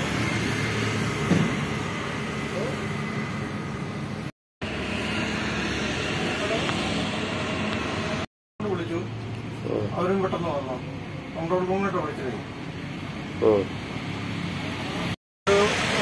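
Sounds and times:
traffic noise: 0:00.0 - 0:16.0.

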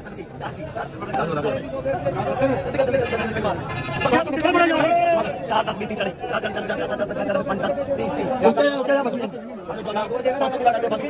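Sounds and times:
men talking at once: 0:00.0 - 0:11.0.

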